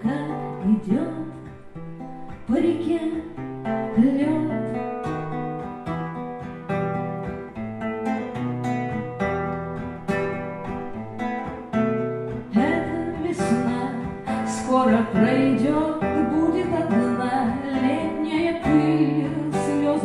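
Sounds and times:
woman singing: 0:00.0 - 0:05.0, 0:12.3 - 0:20.0
classical guitar playing: 0:00.0 - 0:20.0.

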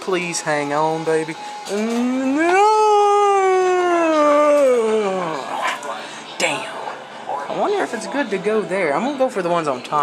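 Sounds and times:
man wailing: 0:01.8 - 0:05.4.

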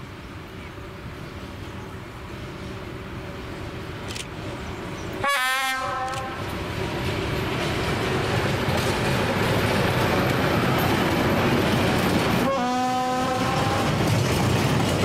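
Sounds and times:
diesel locomotive engine: 0:00.0 - 0:15.0
train wheels rumbling on rails: 0:00.0 - 0:15.0
locomotive horn blast: 0:05.2 - 0:06.4, 0:12.4 - 0:14.1.

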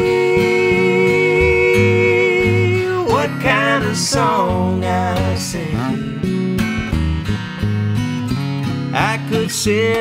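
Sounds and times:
person singing: 0:00.0 - 0:06.1
acoustic guitar strumming chords: 0:00.0 - 0:10.0
electric bass: 0:00.0 - 0:10.0.

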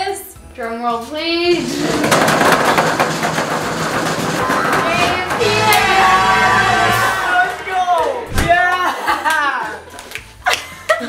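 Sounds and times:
voices shouting and squealing: 0:04.4 - 0:09.0.

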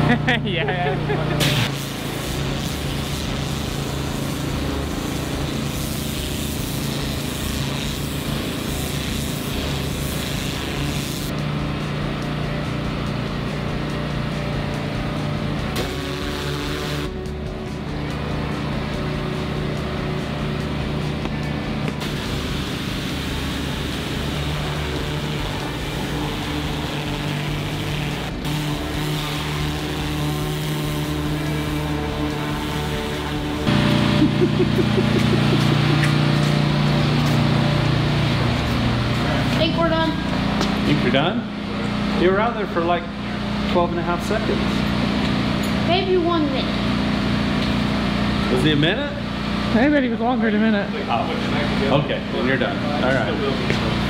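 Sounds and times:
pressure washer engine running: 0:00.0 - 0:54.0
spray hissing on concrete: 0:01.3 - 0:11.3, 0:15.7 - 0:17.2, 0:22.0 - 0:37.4.

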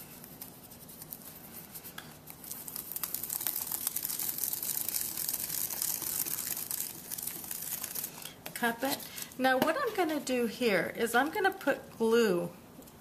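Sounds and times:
paper crinkling and rustling: 0:00.2 - 0:09.4
person speaking: 0:08.6 - 0:12.5.

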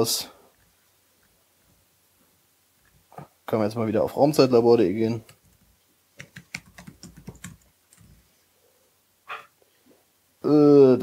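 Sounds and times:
laptop keyboard typing: 0:05.2 - 0:08.3.

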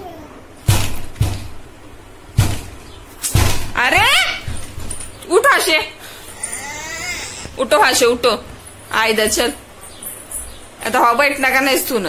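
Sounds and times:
toddler vocalising: 0:06.3 - 0:07.6.

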